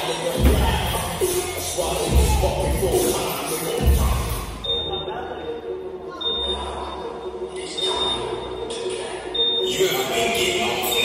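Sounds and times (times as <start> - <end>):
short high beeps: 9.4 - 10.0.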